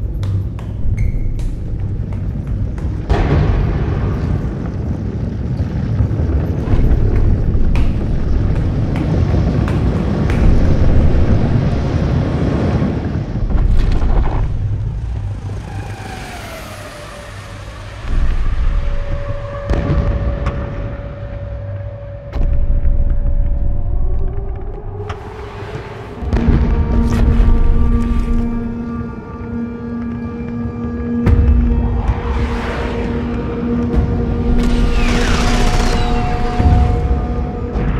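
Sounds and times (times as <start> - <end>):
deep rumble: 0.0 - 37.9.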